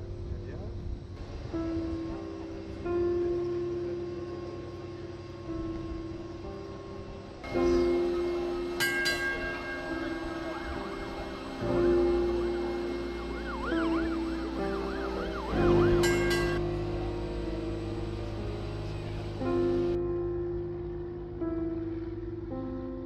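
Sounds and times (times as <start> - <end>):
sustained synth notes: 1.2 - 23.0
warbling high synth line: 7.4 - 20.0.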